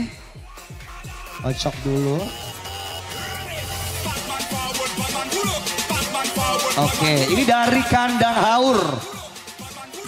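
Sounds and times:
person singing: 0:00.0 - 0:07.9, 0:08.6 - 0:10.0.

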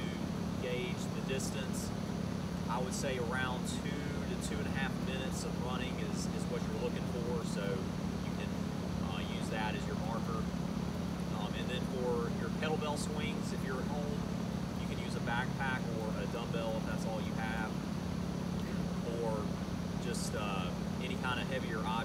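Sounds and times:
man talking: 0:00.0 - 0:01.9, 0:02.7 - 0:10.5, 0:11.3 - 0:17.8, 0:18.6 - 0:22.0
air conditioner units humming: 0:00.0 - 0:22.0.

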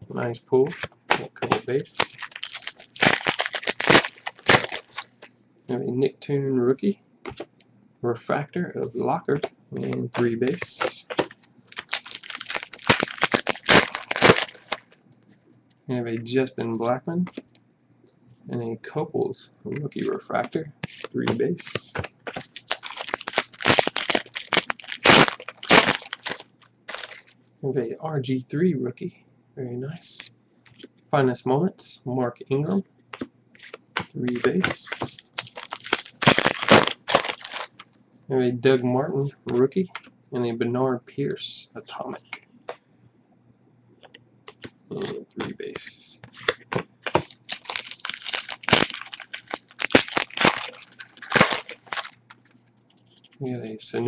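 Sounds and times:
foil wrapper crinkling: 0:01.4 - 0:05.3, 0:10.1 - 0:15.0, 0:21.0 - 0:27.4, 0:33.6 - 0:37.9, 0:46.3 - 0:52.6.

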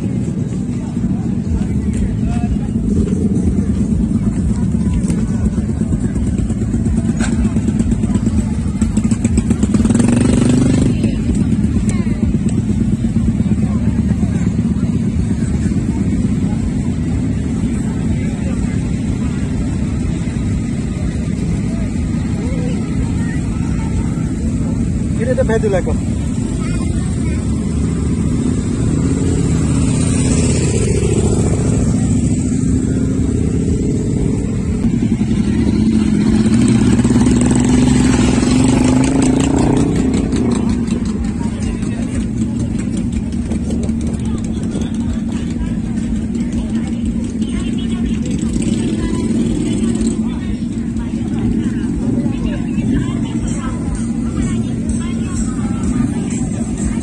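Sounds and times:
motorcycle engines revving: 0:00.0 - 0:57.0
background voices: 0:25.9 - 0:57.0.

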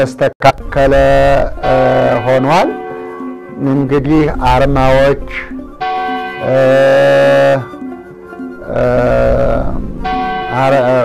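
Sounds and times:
man chanting a hymn: 0:08.6 - 0:09.8.

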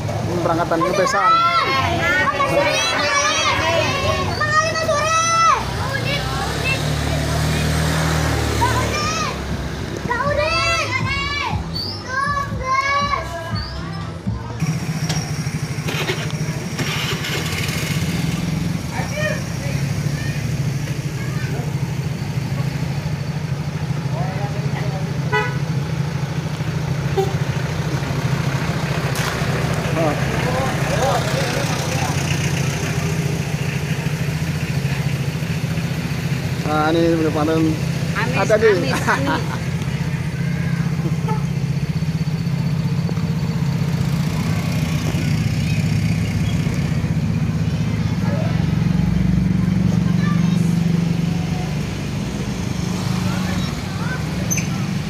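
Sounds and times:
vehicle engine humming: 0:00.0 - 0:55.0
women and children chattering: 0:00.0 - 0:55.0.

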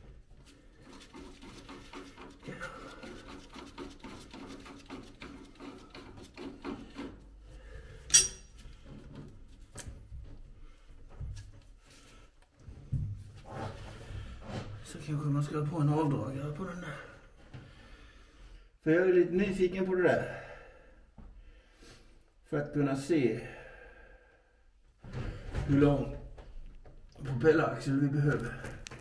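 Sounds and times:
sharp metallic clink: 0:08.1 - 0:08.5.

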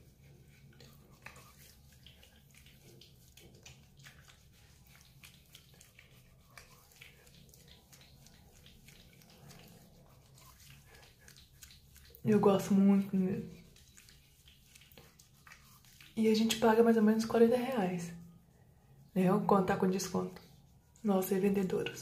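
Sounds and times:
wet squishing of cleanser on skin: 0:00.0 - 0:18.2, 0:19.1 - 0:22.0.

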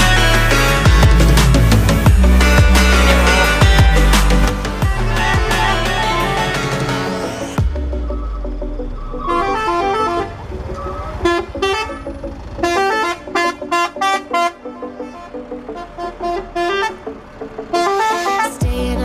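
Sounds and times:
low engine rumble: 0:00.0 - 0:19.0
musical truck horns beeping: 0:00.0 - 0:19.0.

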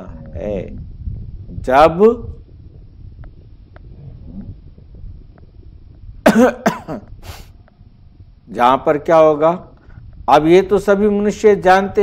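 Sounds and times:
low background noise: 0:00.0 - 0:12.0
man coughing: 0:06.2 - 0:07.5.

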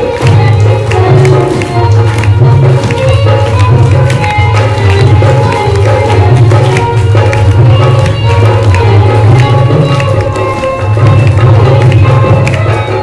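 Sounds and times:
hand drum beat: 0:00.0 - 0:13.0
people clapping: 0:00.0 - 0:13.0.

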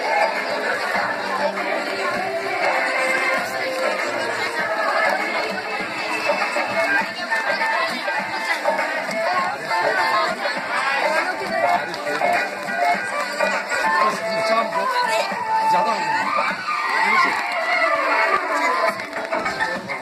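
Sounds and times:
crowd chattering and calling out: 0:00.0 - 0:20.0
music playing: 0:00.0 - 0:20.0.

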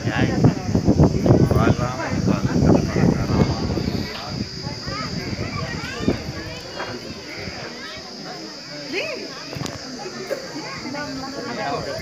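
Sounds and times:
crowd talking: 0:00.0 - 0:12.0
children's voices: 0:00.4 - 0:12.0.

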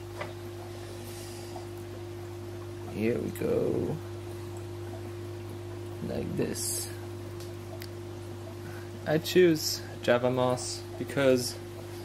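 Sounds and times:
aquarium air pump humming: 0:00.0 - 0:12.0.

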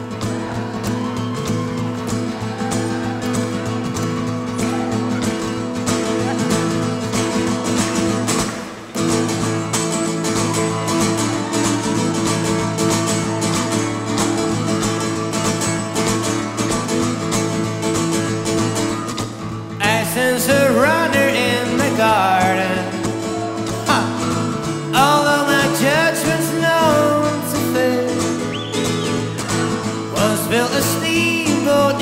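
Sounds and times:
acoustic guitar picking: 0:00.0 - 0:32.0.

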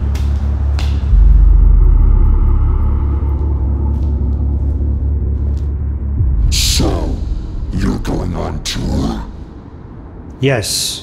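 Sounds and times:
deep loud rumble: 0:01.0 - 0:10.3.

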